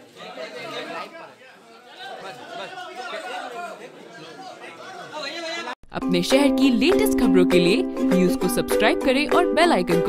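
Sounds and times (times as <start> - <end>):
people chattering: 0.0 - 5.8.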